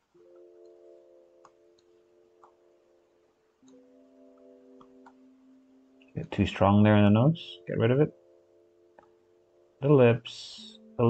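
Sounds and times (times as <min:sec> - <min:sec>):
faint music with held chords: 0:00.0 - 0:11.0
faint clicks: 0:01.4 - 0:02.6, 0:03.6 - 0:05.3.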